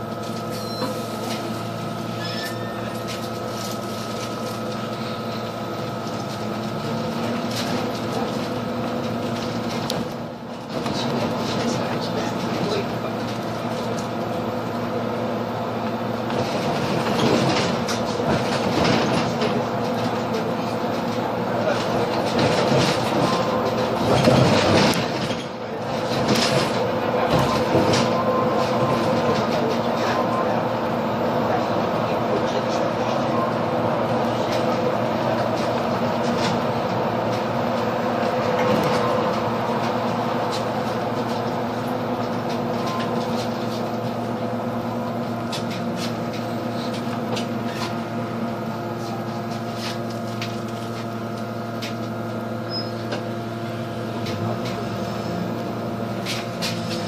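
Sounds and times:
bus drivetrain hum and whine: 0.0s - 57.0s
road noise: 0.0s - 57.0s.

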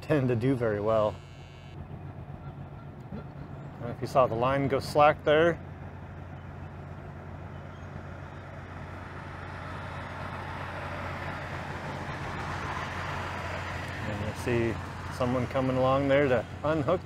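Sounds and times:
low machinery hum: 0.0s - 17.0s.

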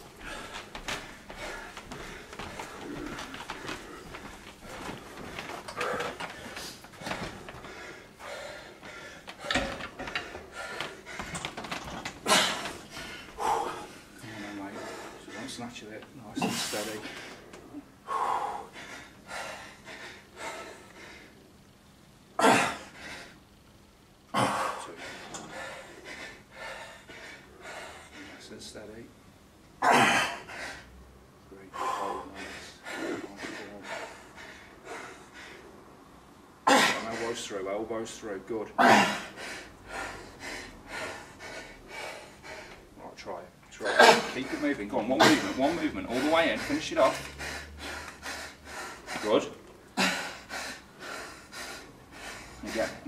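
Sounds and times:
man breathing hard: 0.0s - 15.8s, 16.5s - 21.6s, 22.5s - 23.6s, 24.4s - 28.8s, 30.0s - 31.0s, 31.6s - 36.1s, 38.9s - 43.1s, 43.8s - 53.0s.

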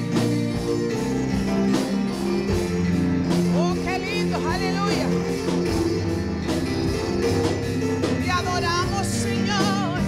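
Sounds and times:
drums: 0.0s - 10.0s
electric guitar: 0.0s - 10.0s
keyboard: 0.0s - 10.0s
sliding melody line: 0.0s - 10.0s.

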